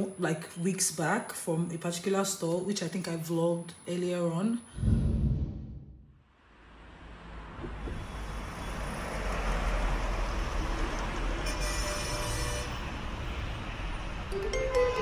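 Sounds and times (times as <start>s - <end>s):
road traffic roar: 6.3s - 15.0s.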